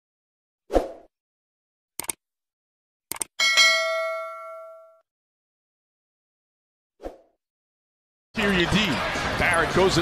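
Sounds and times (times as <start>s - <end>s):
button clicks: 3.1s - 3.3s
bell ding: 3.4s - 5.0s.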